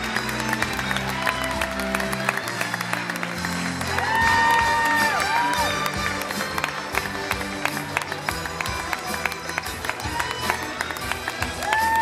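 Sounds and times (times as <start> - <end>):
orchestra playing: 0.0 - 11.8
audience applause: 0.0 - 12.0
high-pitched audience cheer: 0.7 - 2.7, 3.7 - 6.0, 11.4 - 12.0.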